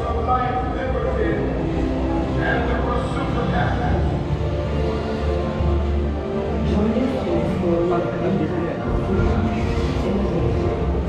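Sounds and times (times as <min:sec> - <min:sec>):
recorded narration: 0:00.0 - 0:04.3, 0:06.5 - 0:11.0
low rumble over loudspeakers: 0:00.0 - 0:11.0.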